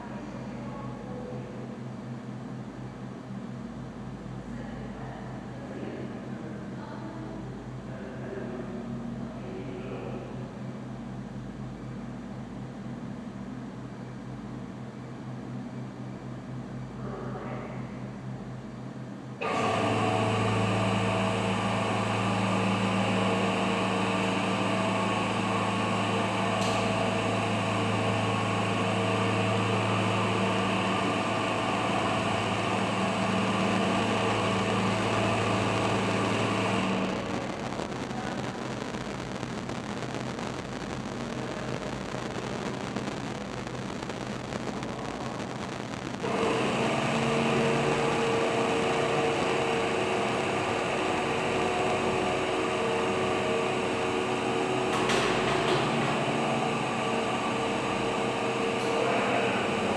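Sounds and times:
faint steady hum: 0.0s - 59.9s
machine drive humming: 0.0s - 59.9s.

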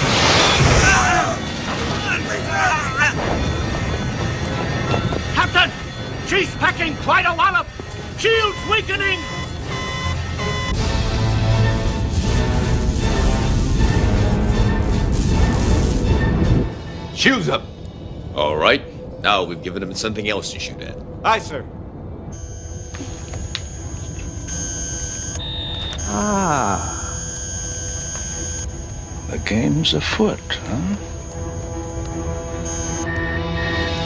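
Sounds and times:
electronic alert tone: 22.4s - 34.0s.

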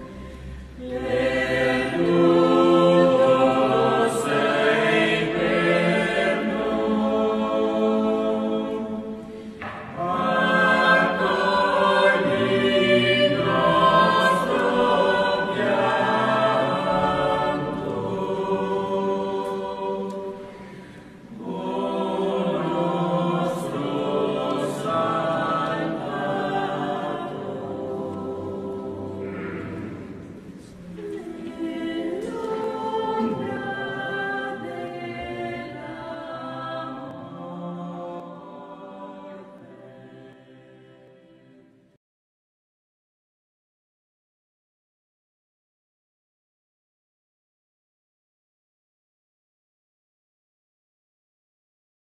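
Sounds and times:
choir singing sustained chords: 0.0s - 42.0s.

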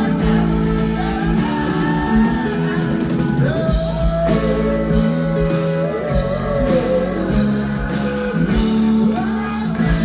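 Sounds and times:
electric guitar: 0.0s - 10.0s
loud rock band playing: 0.0s - 10.0s.

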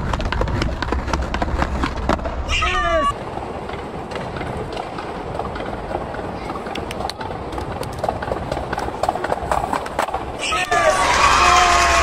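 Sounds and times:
skateboard rolling rumble: 0.0s - 2.5s, 3.1s - 12.0s
skateboard wheels clacking: 0.0s - 2.5s, 3.1s - 12.0s.

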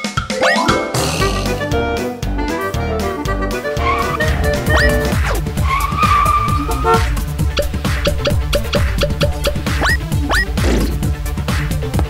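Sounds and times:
animated intro music: 0.0s - 11.9s
held screech: 3.9s - 7.2s
swooping sound effects: 4.0s - 5.4s, 7.6s - 11.0s.

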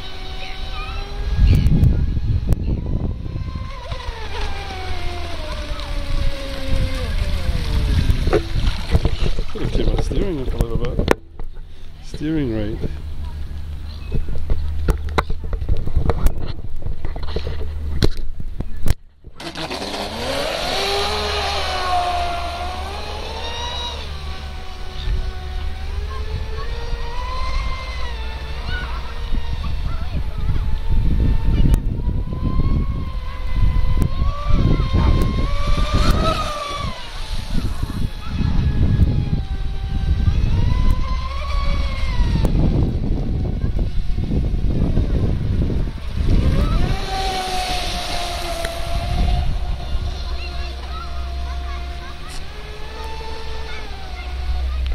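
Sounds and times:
electric motor whining: 0.0s - 16.4s, 19.3s - 54.9s.

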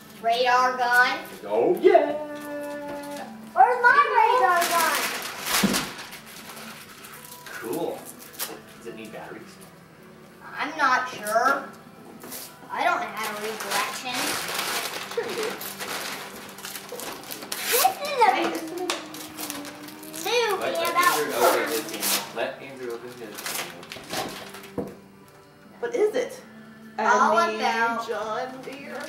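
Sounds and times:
child talking and calling out: 2.2s - 5.2s, 17.7s - 22.0s
crackling and rustling: 4.4s - 8.6s, 13.1s - 24.8s.

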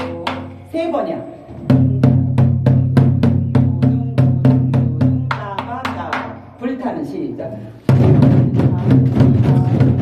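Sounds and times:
barrel drum beaten with sticks: 1.7s - 6.4s, 7.9s - 10.0s.

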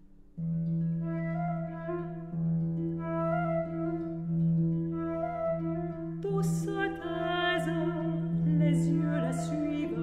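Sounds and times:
concert harp: 0.0s - 10.0s
flute: 0.6s - 10.0s.

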